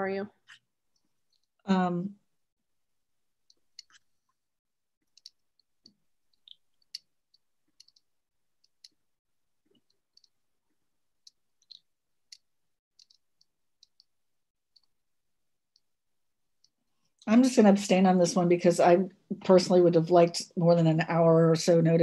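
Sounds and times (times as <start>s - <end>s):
faint small clicks: 5.0s - 9.0s, 11.2s - 14.1s.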